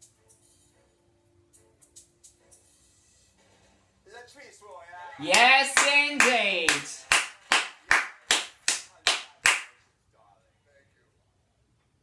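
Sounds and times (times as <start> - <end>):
person clapping hands: 5.2 - 9.8.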